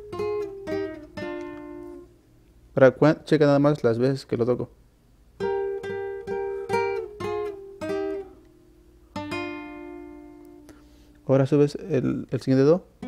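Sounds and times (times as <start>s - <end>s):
classical acoustic guitar: 0.0s - 2.1s, 5.4s - 11.2s.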